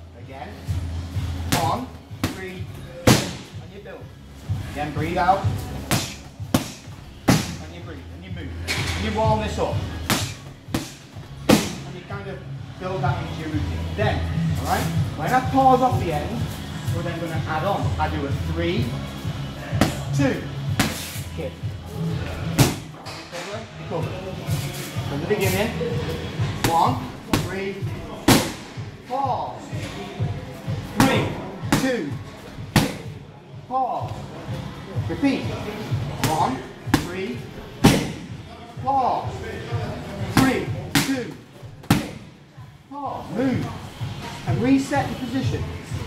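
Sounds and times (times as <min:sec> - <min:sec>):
kick smacking pads: 0:03.0 - 0:03.5, 0:05.9 - 0:07.6, 0:10.1 - 0:11.8, 0:22.6 - 0:22.9, 0:37.8 - 0:38.2, 0:41.8 - 0:42.2.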